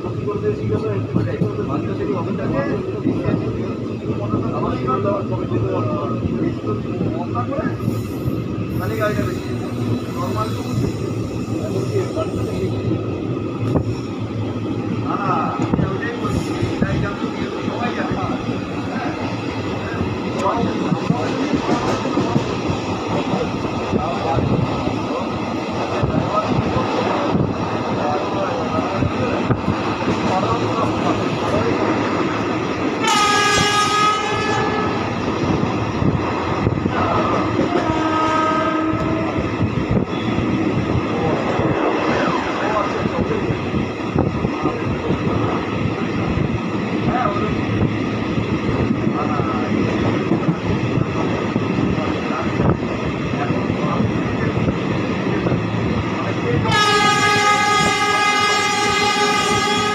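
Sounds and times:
train wheels rumbling on rails: 0.0s - 59.9s
train horn: 33.0s - 35.0s, 37.7s - 39.4s, 56.7s - 59.9s.

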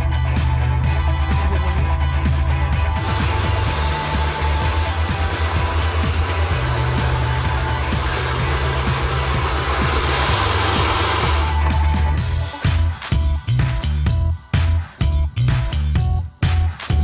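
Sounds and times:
electronic music with beat: 0.0s - 17.0s
hair dryer blowing: 2.8s - 13.6s.

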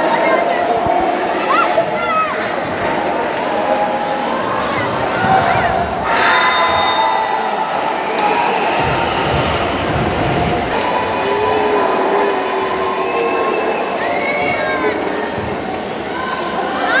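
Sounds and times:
crowd cheering: 1.3s - 17.0s.

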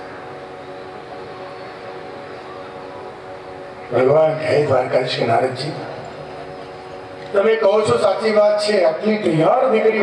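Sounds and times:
drone of held tones: 0.0s - 7.3s.

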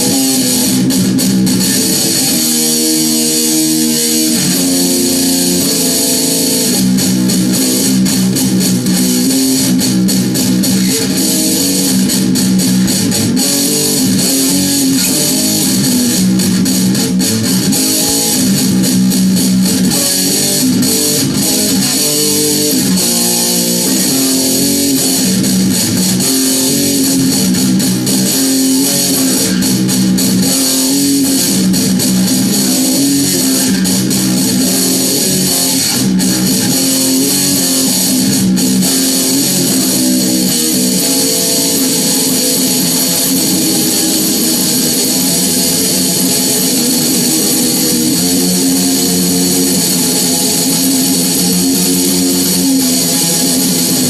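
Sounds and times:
heavily distorted electric guitar riffing: 0.0s - 54.0s.

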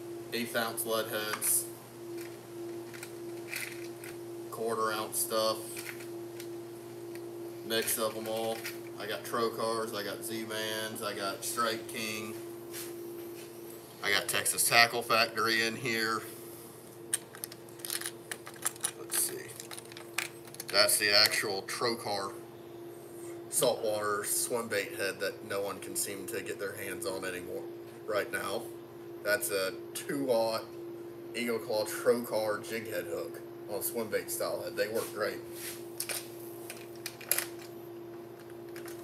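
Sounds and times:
metal hooks clicking in plastic box: 17.2s - 20.8s.

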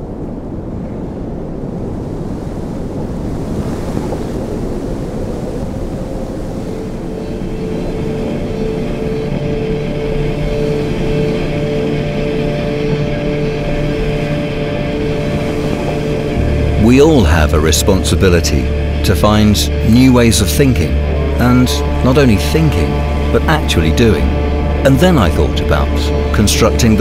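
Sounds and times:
low rushing rumble: 4.1s - 27.0s
held musical chord tones: 5.8s - 27.0s.

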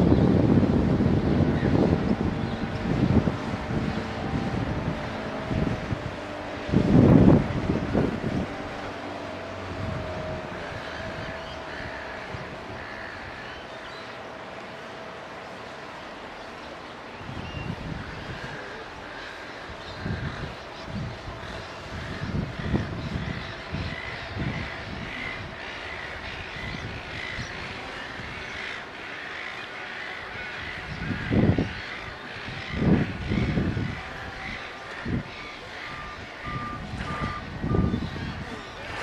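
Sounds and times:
wind gusting on microphone: 0.0s - 39.0s
faint bird calls: 10.6s - 39.0s.

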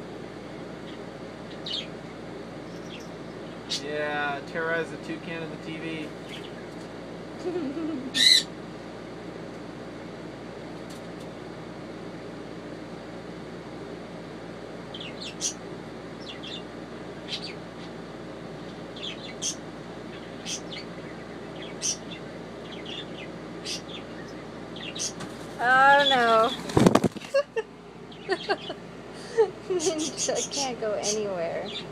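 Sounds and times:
steady background hum: 0.0s - 31.9s
bird chirping high-pitched: 0.9s - 2.0s, 8.2s - 8.5s, 14.9s - 15.6s, 17.3s - 17.6s, 19.0s - 25.2s, 29.8s - 31.9s.

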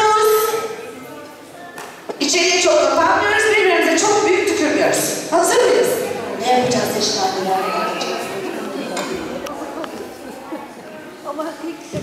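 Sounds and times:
children's voices echoing in a hall: 0.0s - 12.0s.

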